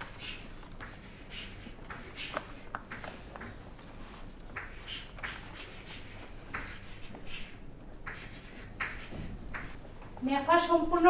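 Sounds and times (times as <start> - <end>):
chalk scratching on a chalkboard: 0.1 - 3.5, 4.6 - 9.8.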